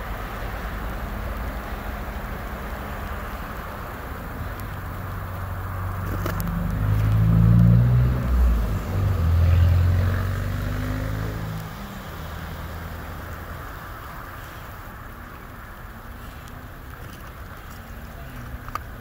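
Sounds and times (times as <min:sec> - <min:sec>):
vehicle engine passing by: 0:00.0 - 0:19.0.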